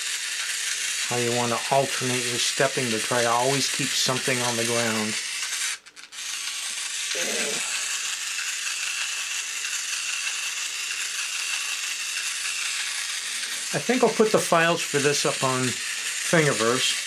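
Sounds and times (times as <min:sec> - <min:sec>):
small motor whining: 0:00.0 - 0:17.0.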